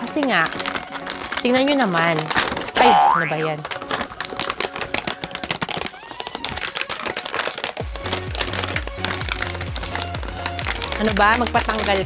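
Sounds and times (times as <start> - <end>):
plastic packaging crackling: 0.0 - 12.0
music with bass beat: 7.8 - 12.0.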